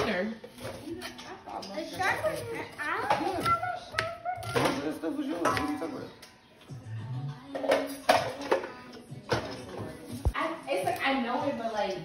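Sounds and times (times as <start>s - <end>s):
background music: 1.9s - 12.0s.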